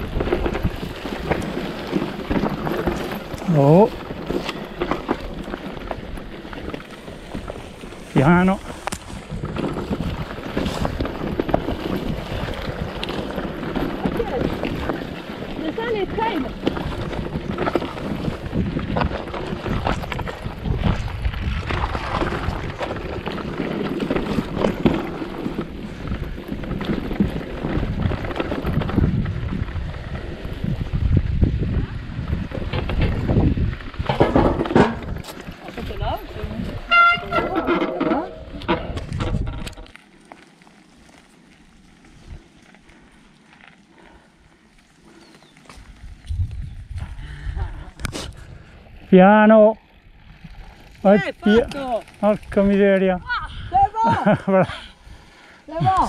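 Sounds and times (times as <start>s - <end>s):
bike rumbling and rattling: 0.0s - 56.0s
wind on microphone: 15.6s - 39.9s, 45.7s - 49.1s.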